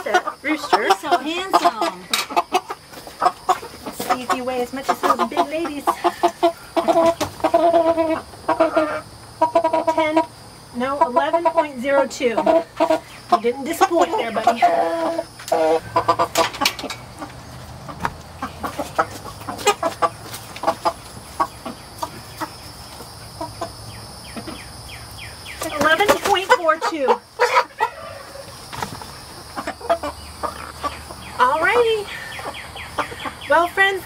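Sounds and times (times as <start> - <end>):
chickens clucking: 0.0 - 34.0.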